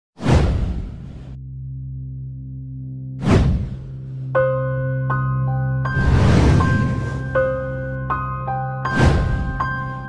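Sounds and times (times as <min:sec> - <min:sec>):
whoosh: 0:03.2 - 0:03.9, 0:05.9 - 0:07.6.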